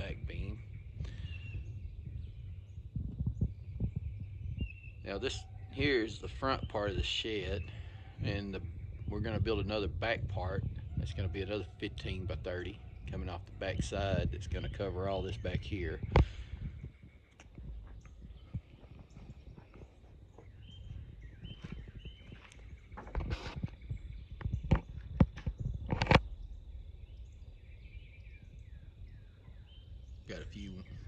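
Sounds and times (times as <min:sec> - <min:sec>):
faint bird chirps: 0:00.0 - 0:31.0
footsteps and knocks: 0:17.4 - 0:26.2.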